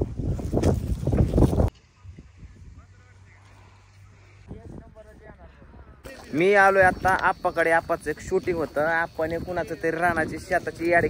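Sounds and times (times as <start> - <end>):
wind buffeting microphone: 0.0 - 3.0, 4.3 - 11.0.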